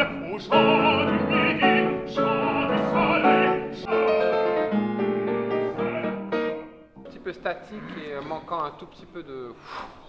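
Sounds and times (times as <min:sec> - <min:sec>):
baritone singing: 0:00.0 - 0:07.1
grand piano accompaniment: 0:00.0 - 0:07.8.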